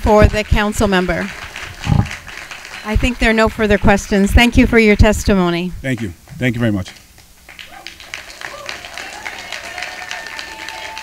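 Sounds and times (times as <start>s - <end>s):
audience applauding: 0.8s - 4.0s, 7.5s - 11.0s.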